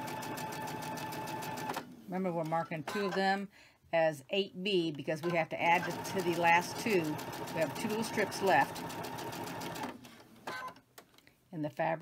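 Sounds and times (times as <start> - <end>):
sewing machine stitching: 0.0 - 3.2, 5.2 - 10.8.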